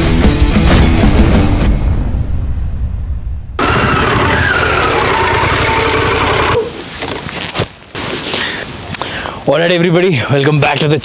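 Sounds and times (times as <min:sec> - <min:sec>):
low rumble: 0:01.0 - 0:05.8.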